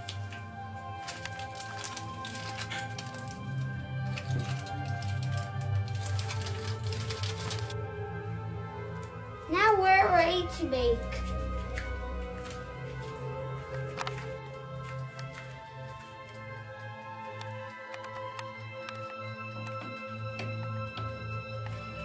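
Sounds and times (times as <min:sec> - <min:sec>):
background music: 0:00.0 - 0:22.0
aluminium foil crinkling: 0:01.0 - 0:07.8.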